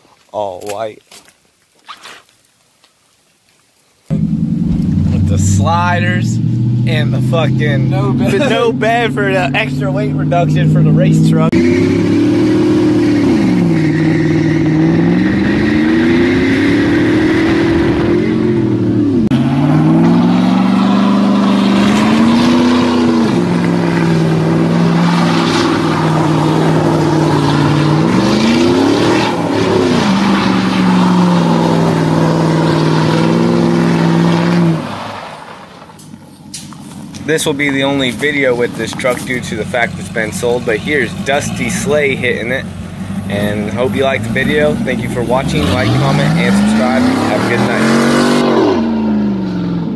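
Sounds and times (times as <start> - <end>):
pickup truck engine revving: 4.1 - 35.7, 37.1 - 49.9
spinning tyres hissing: 4.1 - 48.9.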